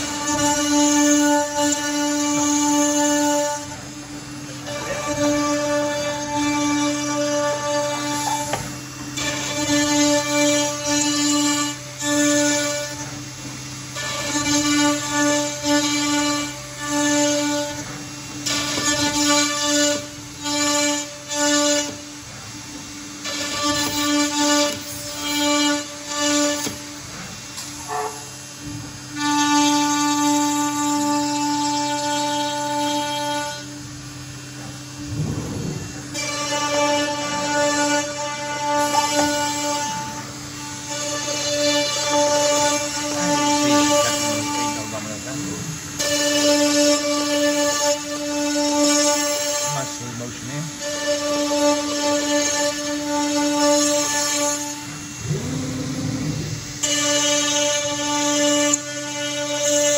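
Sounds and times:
router spindle whining while cutting: 0.0 - 59.9.

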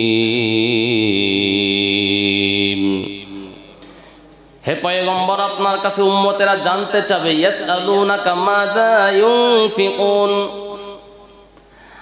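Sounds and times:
man reciting melodically: 0.0 - 3.8, 4.6 - 11.5.

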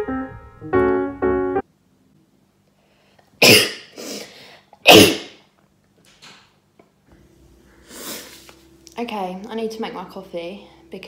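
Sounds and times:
woman coughing hard: 3.4 - 3.9, 4.8 - 5.4.

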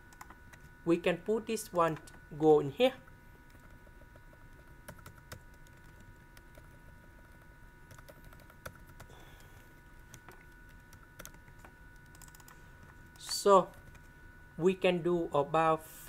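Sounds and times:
faint high hum: 0.0 - 16.0
computer keyboard typing: 3.5 - 9.1, 10.0 - 14.1.

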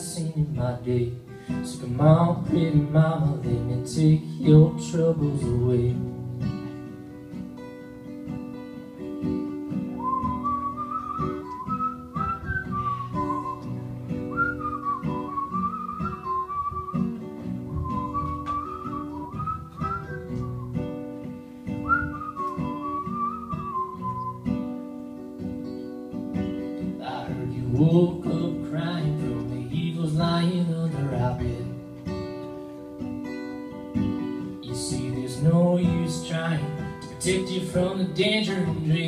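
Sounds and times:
acoustic guitar strumming: 0.0 - 39.0
whistled melody: 9.9 - 21.0, 21.7 - 24.7.

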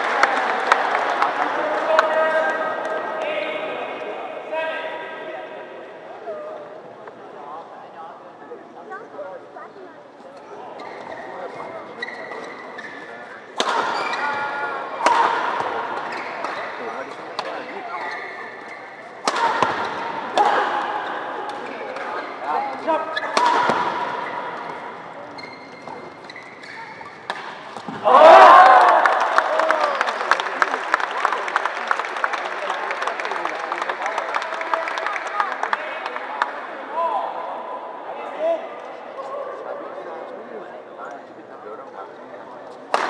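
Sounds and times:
crowd applauding: 0.0 - 2.6, 28.0 - 36.5
crowd shouting and cheering: 0.0 - 6.0, 26.6 - 39.9
murmuring crowd: 0.0 - 34.2, 35.3 - 43.0
shoe squeaks on court floor: 10.4 - 14.4, 17.6 - 19.1, 25.2 - 27.3
rackets hitting shuttlecock: 13.6 - 22.2, 23.2 - 25.0, 25.8 - 28.1.

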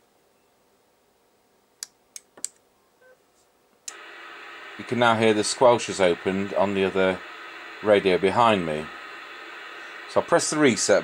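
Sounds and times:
radio squelch hiss: 3.9 - 11.0.

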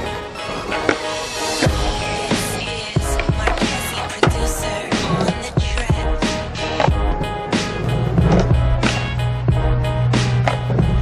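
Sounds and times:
skateboard wheels rolling: 0.0 - 9.2, 10.2 - 11.0
music with steady beat: 0.1 - 11.0
skateboard clacking on asphalt: 0.4 - 6.0, 6.6 - 7.1, 10.3 - 10.8.

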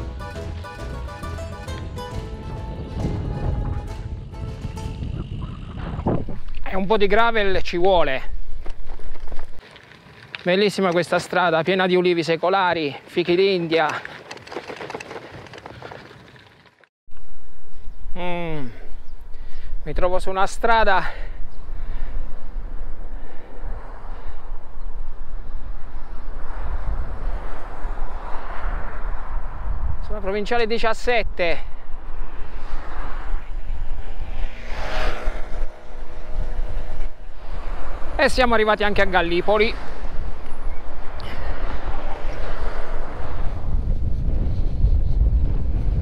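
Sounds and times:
wind rumbling on microphone: 1.7 - 10.4, 18.9 - 46.0
loud steady low rumble: 1.8 - 6.5
bicycle tyres crunching on gravel: 8.2 - 12.2, 12.8 - 16.9, 36.6 - 41.1
motor vehicle passing: 21.6 - 30.2, 31.6 - 46.0.

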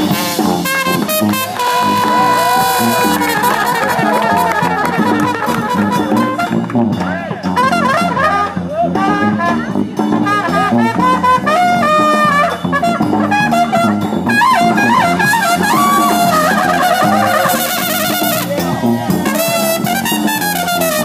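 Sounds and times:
brass band playing jazz: 0.0 - 21.0
trumpets playing lead lines: 0.0 - 21.0.

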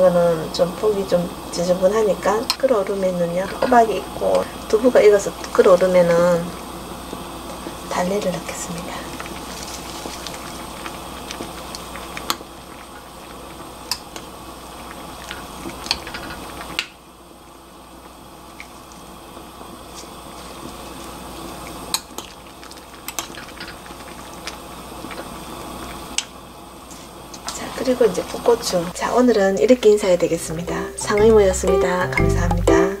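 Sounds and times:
stew bubbling in a pot: 0.0 - 29.1.

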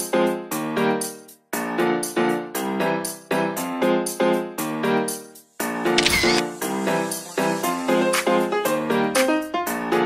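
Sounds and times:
camera shutter click: 6.0 - 6.5
upbeat piano music: 6.9 - 10.0.

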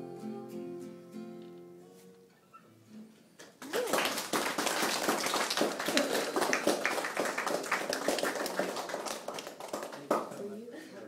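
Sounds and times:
hand clapping: 3.4 - 10.4.

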